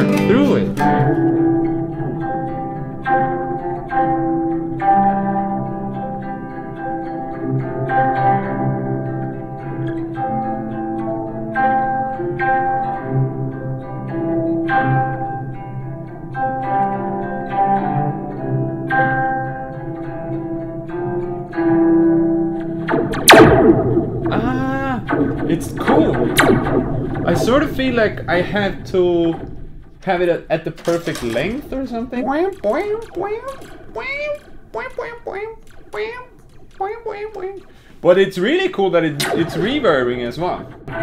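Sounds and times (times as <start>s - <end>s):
classical guitar fingerpicked: 0.0s - 24.4s
spring reverb sweep from a hit: 22.9s - 24.4s, 25.0s - 30.4s.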